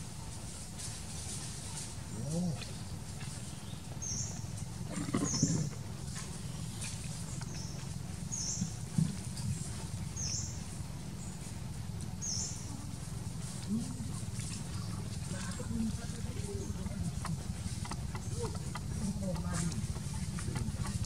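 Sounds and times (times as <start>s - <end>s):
monkeys calling: 4.9s - 7.8s.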